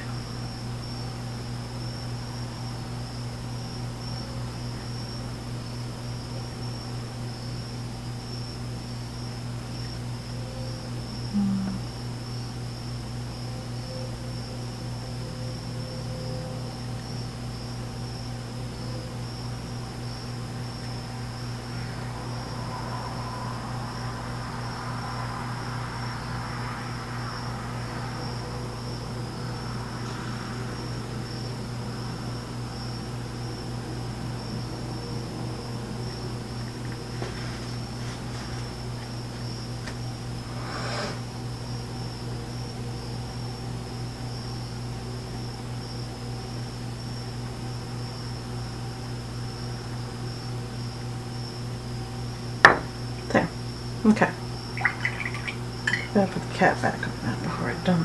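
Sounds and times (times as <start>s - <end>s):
faint high-pitched whine: 0.0s - 37.3s
low electrical hum: 0.0s - 58.0s.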